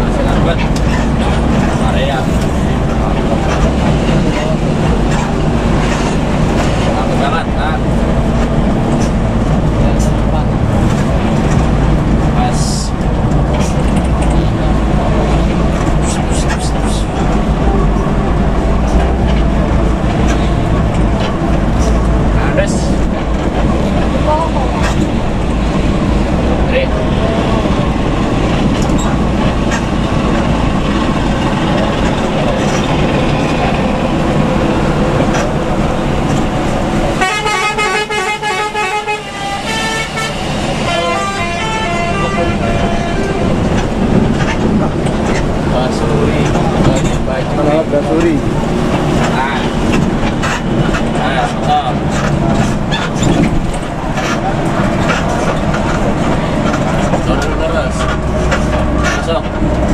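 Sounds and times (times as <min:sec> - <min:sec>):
diesel bus engine droning: 0:00.0 - 0:59.9
musical bus horn: 0:37.1 - 0:44.0.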